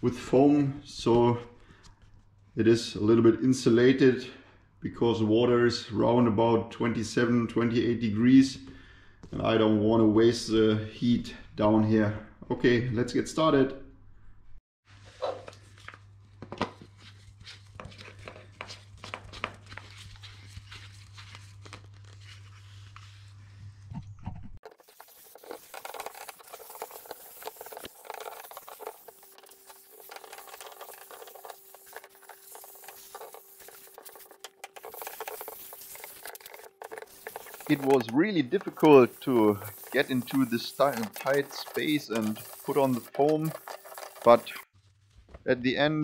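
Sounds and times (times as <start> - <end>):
foam gun handling clicks and scrapes: 24.6 - 44.7.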